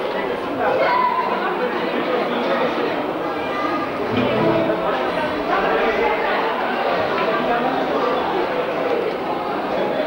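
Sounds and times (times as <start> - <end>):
babble of overlapping conversation: 0.0 - 10.0.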